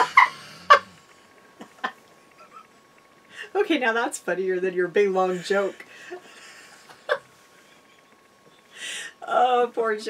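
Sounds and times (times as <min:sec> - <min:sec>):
woman laughing: 0:00.0 - 0:01.0, 0:05.2 - 0:08.2.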